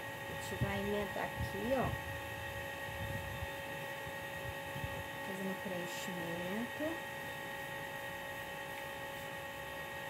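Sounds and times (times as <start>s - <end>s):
electric desk fan running: 0.0s - 10.0s.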